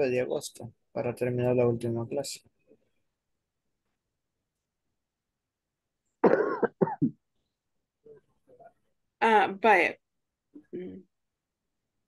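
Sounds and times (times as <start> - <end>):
person clearing throat: 6.2 - 7.2.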